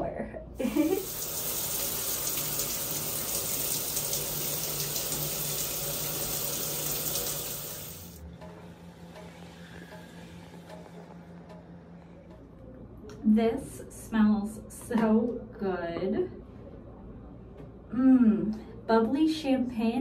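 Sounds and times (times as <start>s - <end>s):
shower water spraying: 0.6s - 8.2s.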